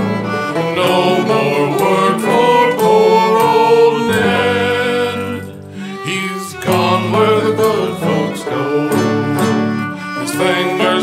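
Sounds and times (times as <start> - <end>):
fiddle: 0.0 - 11.0
strummed guitar: 0.0 - 11.0.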